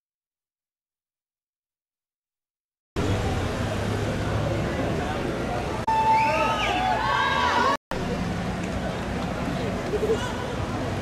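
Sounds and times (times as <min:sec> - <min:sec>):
vehicle engine humming: 0:03.0 - 0:06.8, 0:07.4 - 0:11.0
crowd chatter: 0:03.0 - 0:11.0.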